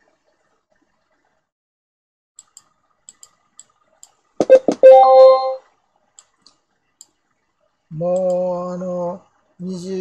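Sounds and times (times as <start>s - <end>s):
faint clicks: 2.4s - 4.2s, 6.1s - 7.4s, 8.1s - 8.4s
short musical chime: 4.5s - 5.6s.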